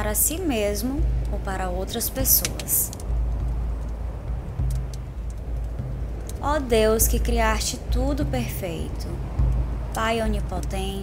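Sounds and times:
deep steady rumble: 0:00.0 - 0:11.0
wood fire crackling: 0:00.0 - 0:11.0.

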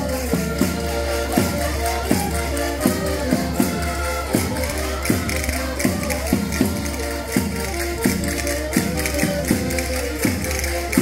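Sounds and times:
button accordion melody: 0:00.0 - 0:11.0
steady percussion beat: 0:00.0 - 0:11.0.

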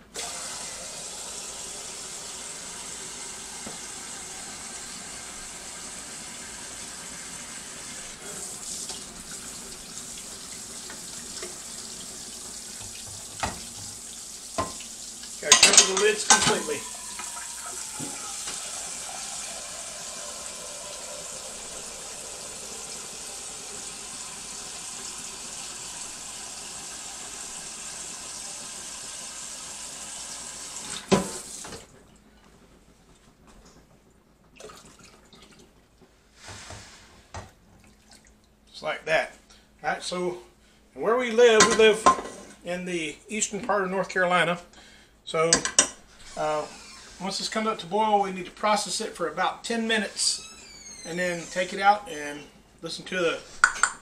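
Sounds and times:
kitchen tap running: 0:00.1 - 0:31.9, 0:53.5 - 0:54.0
pots and dishes clattering: 0:15.5 - 0:17.4, 0:41.6 - 0:42.5.

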